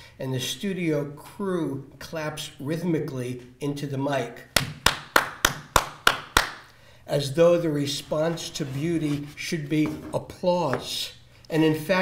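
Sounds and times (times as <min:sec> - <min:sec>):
hand claps: 0:04.6 - 0:06.7.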